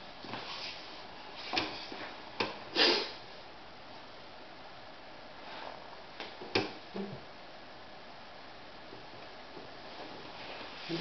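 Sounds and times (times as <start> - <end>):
person sniffing: 2.7 - 3.2.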